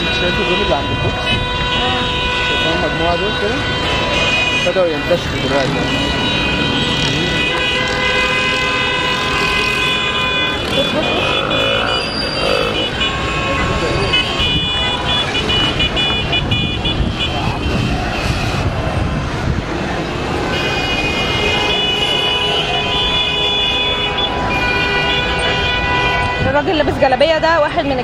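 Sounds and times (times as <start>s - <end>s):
vehicle horns blasting: 0.0s - 18.7s, 20.1s - 26.7s
crowd voices: 0.0s - 28.0s
traffic noise: 0.0s - 28.0s.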